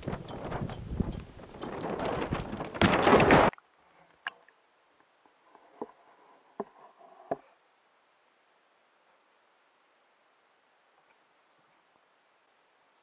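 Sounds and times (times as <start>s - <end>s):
wind noise: 0.0s - 3.5s.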